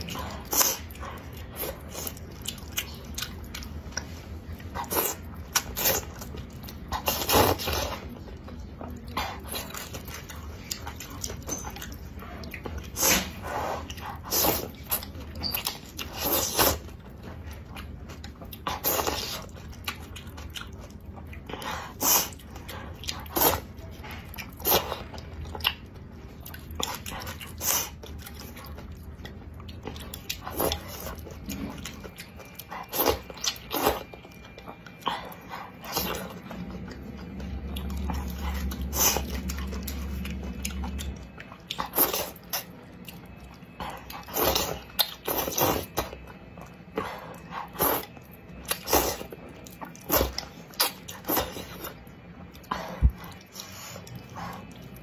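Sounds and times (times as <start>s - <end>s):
chewing and biting noodles: 0.0s - 55.0s.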